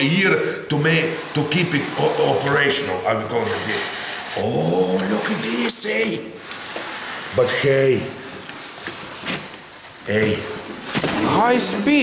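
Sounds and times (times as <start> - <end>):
cardboard box scraping on metal: 0.7 - 4.0.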